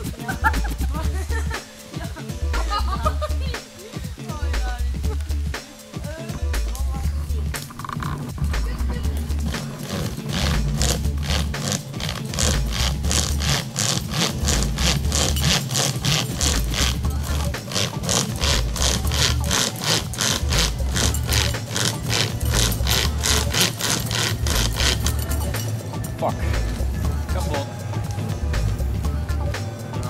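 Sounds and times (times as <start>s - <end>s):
funk backing track: 0.0s - 30.0s
hand saw rasping through wood: 9.4s - 25.7s.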